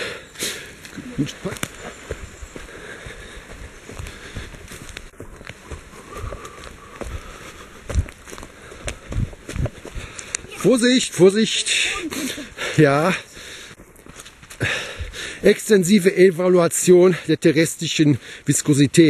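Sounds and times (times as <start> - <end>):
footsteps on dirt path: 0.0 - 16.1.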